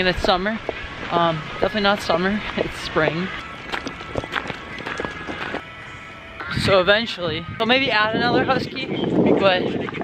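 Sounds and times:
footsteps on gravel: 0:00.0 - 0:05.7.

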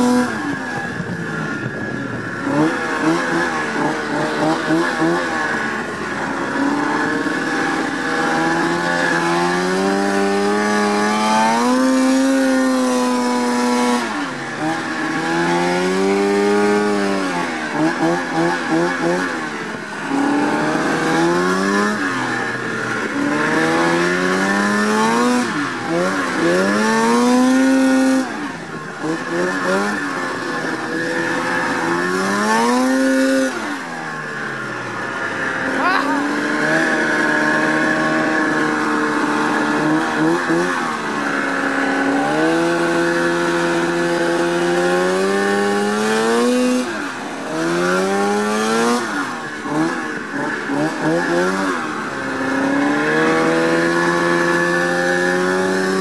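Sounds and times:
snowmobile engine revving: 0:00.0 - 0:56.0.

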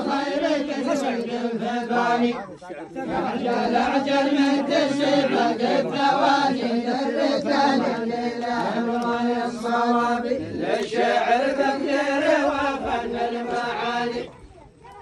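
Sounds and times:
men chanting in unison: 0:00.0 - 0:14.4.

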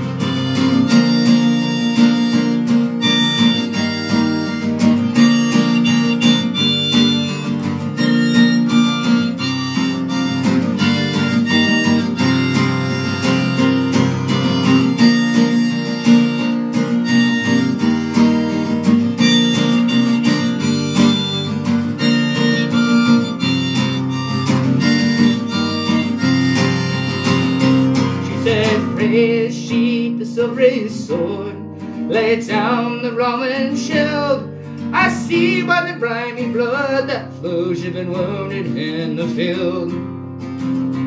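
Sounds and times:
harmonica melody: 0:00.0 - 0:29.7, 0:31.6 - 0:37.3
acoustic guitar accompaniment: 0:00.0 - 0:41.0.

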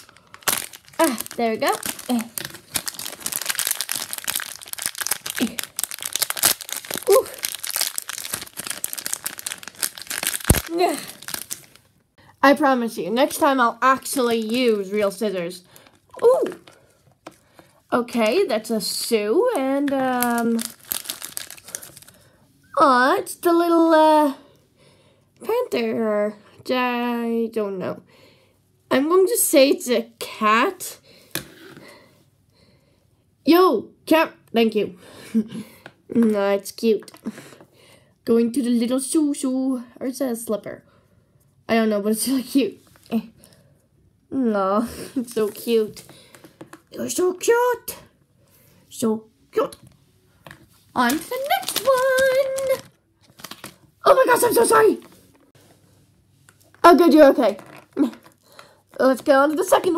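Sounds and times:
foil packet crinkling and tearing: 0:00.0 - 0:11.9, 0:13.2 - 0:17.7, 0:19.5 - 0:22.3, 0:51.0 - 0:55.4, 0:56.5 - 0:59.9.

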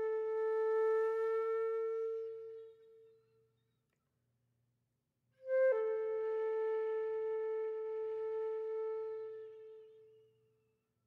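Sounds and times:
flute holding a long note: 0:00.0 - 0:03.1, 0:05.4 - 0:10.2.

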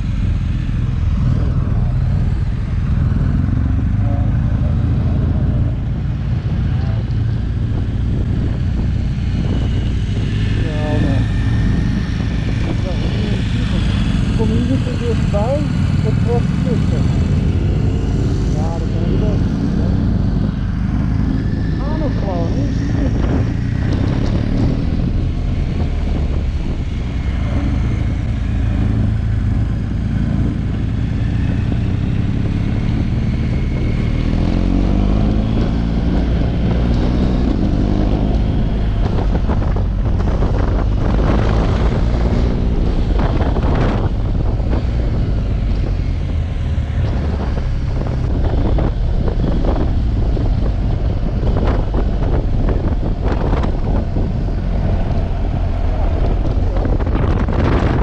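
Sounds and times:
motorcycle engine running: 0:00.0 - 0:58.0
wind rush: 0:00.0 - 0:58.0.

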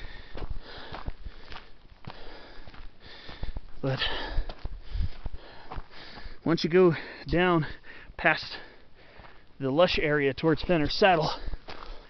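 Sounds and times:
footsteps on gravel: 0:00.0 - 0:07.8, 0:08.5 - 0:12.0
man breathing: 0:00.0 - 0:09.6, 0:11.3 - 0:12.0.

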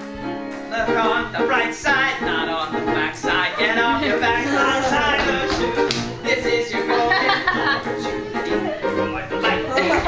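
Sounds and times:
band with upright bass and piano: 0:00.0 - 0:10.0
sharp tapping beat: 0:00.3 - 0:08.4.

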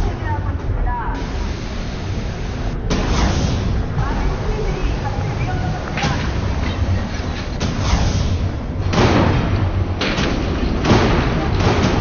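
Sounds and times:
steady low rumble: 0:00.0 - 0:12.0
heavy booms: 0:05.7 - 0:12.0.

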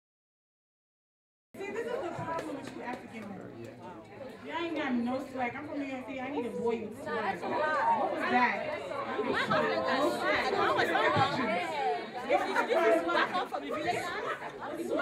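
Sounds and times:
voices talking in a large hall: 0:01.6 - 0:15.0.

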